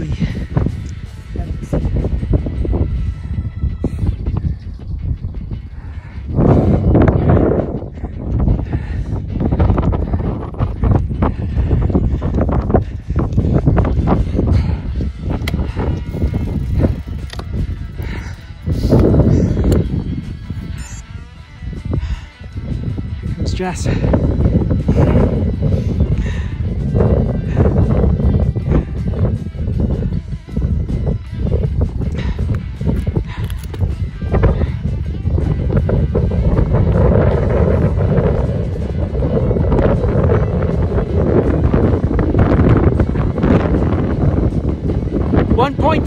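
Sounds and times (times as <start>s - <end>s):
background music: 0.0s - 46.0s
wind buffeting microphone: 0.0s - 46.0s.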